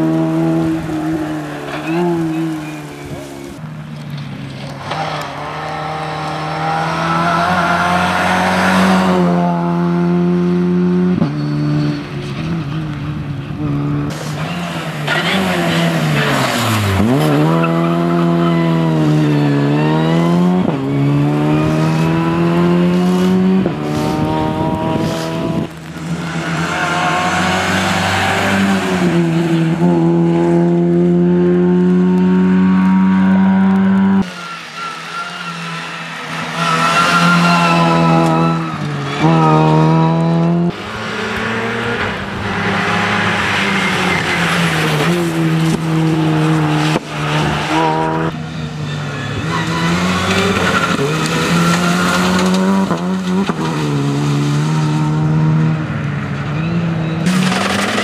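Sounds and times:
rally car engine revving: 0:00.0 - 0:58.0.

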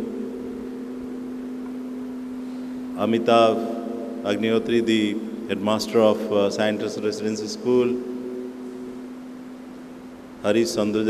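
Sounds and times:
steady low hum: 0:00.0 - 0:11.0.

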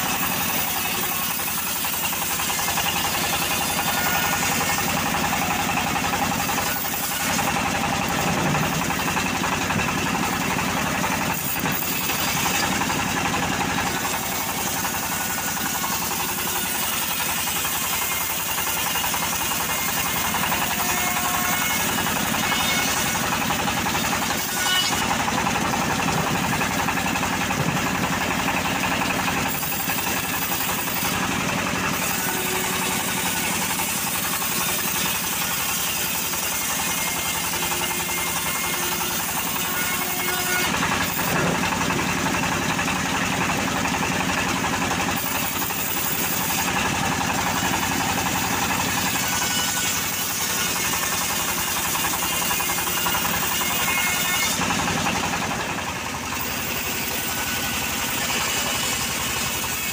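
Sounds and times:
bandsaw mill running: 0:00.0 - 0:59.9
saw blade rasping through wood: 0:00.0 - 0:59.9.

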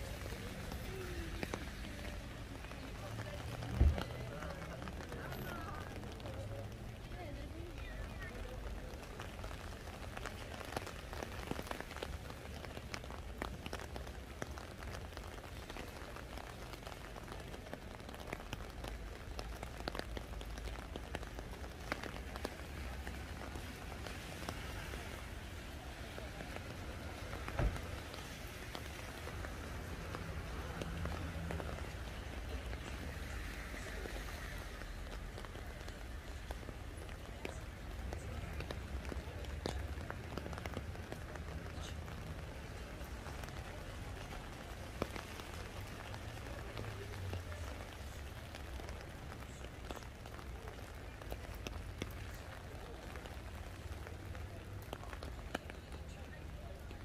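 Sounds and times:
rain falling on wet street: 0:00.0 - 0:57.0.

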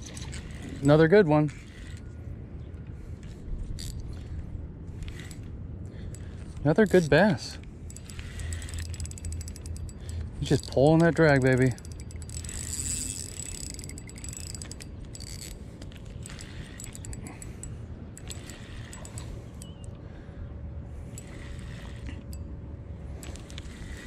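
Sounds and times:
fishing reel being wound: 0:00.0 - 0:02.2, 0:03.2 - 0:04.3, 0:04.9 - 0:07.1, 0:07.9 - 0:19.9, 0:21.1 - 0:22.5, 0:23.2 - 0:24.0
fishing reel drag clicking: 0:00.0 - 0:02.2, 0:03.2 - 0:07.1, 0:07.9 - 0:20.0, 0:21.1 - 0:22.5, 0:23.2 - 0:24.0.

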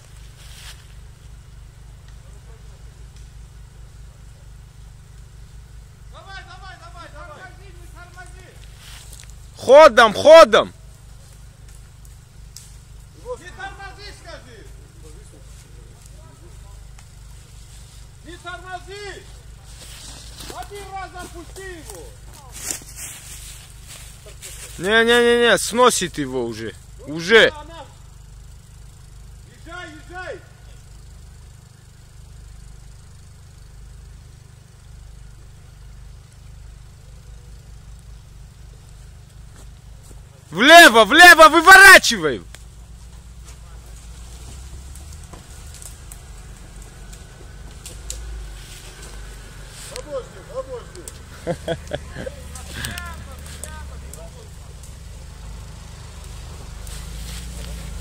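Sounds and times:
jeep engine running: 0:00.0 - 0:58.0
person shouting: 0:40.5 - 0:42.4, 0:52.0 - 0:54.0.

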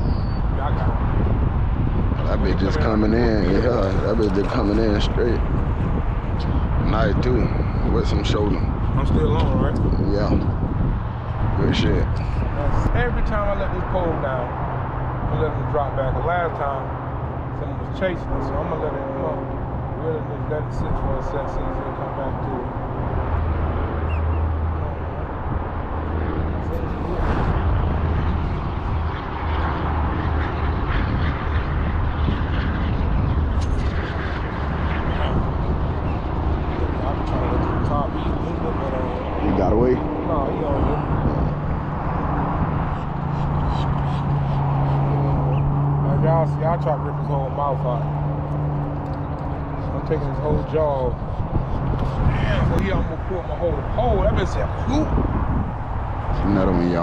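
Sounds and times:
low hum: 0:00.0 - 0:57.0
wind buffeting microphone: 0:00.0 - 0:57.0.

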